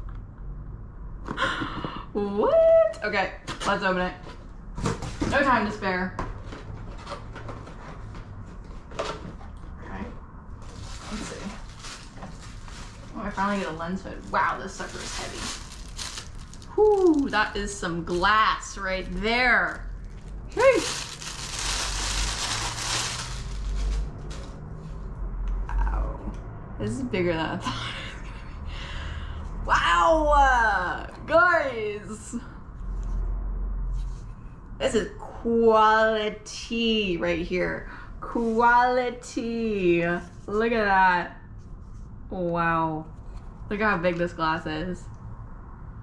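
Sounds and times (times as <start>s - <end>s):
low room hum: 0.0s - 46.0s
plastic bag crinkling: 10.6s - 24.6s
person speaking: 16.7s - 19.9s, 20.5s - 21.3s.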